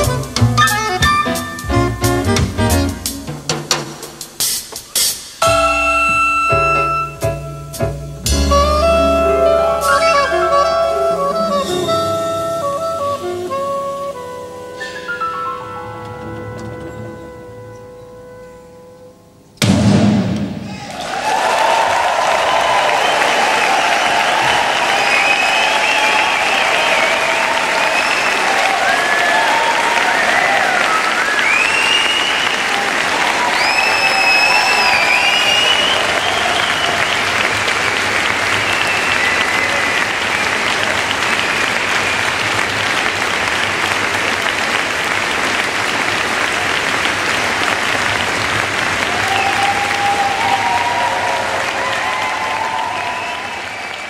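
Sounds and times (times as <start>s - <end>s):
shouted cheers: 20.6s - 37.6s, 49.0s - 54.0s
audience applauding: 20.8s - 54.0s
whistles: 24.5s - 29.3s, 30.2s - 32.7s, 33.5s - 37.3s, 38.5s - 40.6s, 52.9s - 54.0s.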